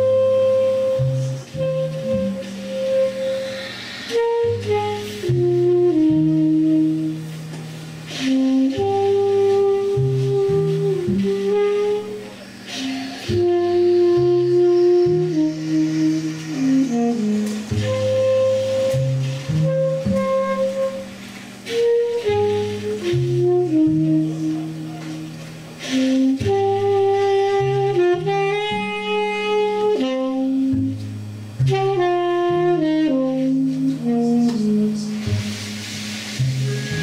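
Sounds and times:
double bass: 0.0s - 37.0s
tenor saxophone: 0.0s - 37.0s
trumpet: 0.0s - 37.0s.

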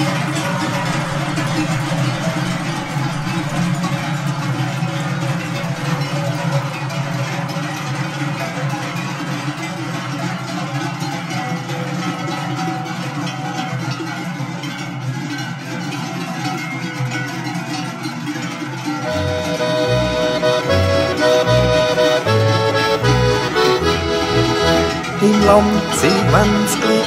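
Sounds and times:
cowbells clanging: 0.0s - 27.0s.

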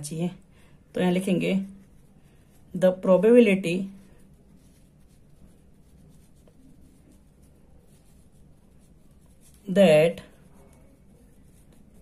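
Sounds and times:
pen scratching on paper: 2.9s - 12.0s.

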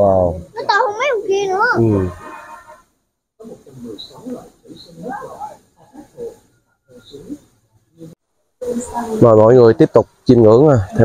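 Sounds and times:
quiet indistinct voices: 0.0s - 11.0s.

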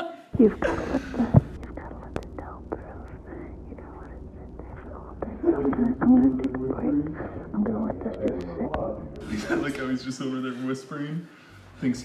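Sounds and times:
man whispering: 1.0s - 9.3s.

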